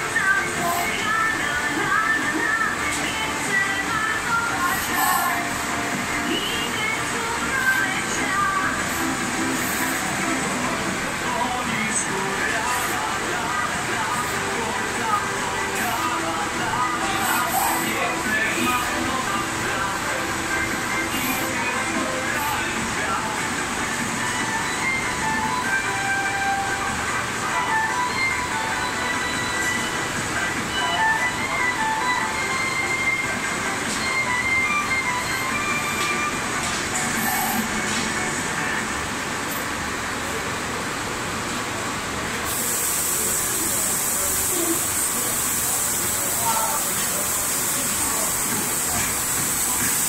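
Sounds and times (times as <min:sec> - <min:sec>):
music playing: 0:00.0 - 0:39.2
furnaces and blowers roaring: 0:00.0 - 0:50.0.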